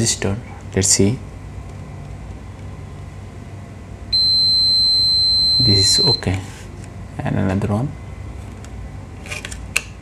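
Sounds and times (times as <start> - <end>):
multimeter continuity beep: 4.1 - 6.3.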